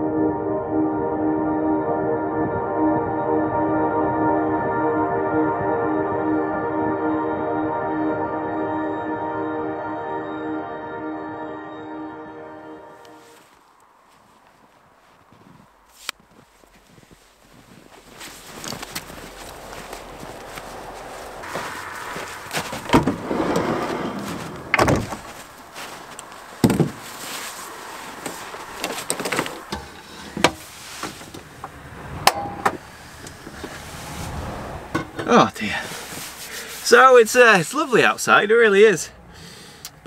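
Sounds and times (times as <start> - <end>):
ambient music: 0.0 - 13.5, 18.3 - 29.7
steady outdoor hiss: 12.8 - 40.0
van sliding door knocks: 22.9 - 25.4, 26.6 - 27.0.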